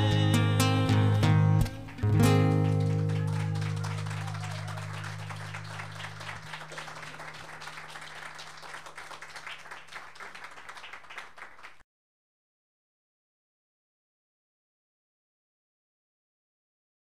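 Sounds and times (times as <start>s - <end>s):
acoustic guitar chord ringing: 0.0s - 7.3s
audience clapping: 1.2s - 11.8s.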